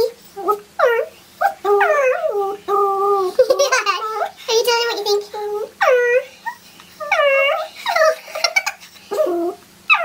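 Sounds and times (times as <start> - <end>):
small dog whining: 0.3 - 3.4, 5.4 - 10.0.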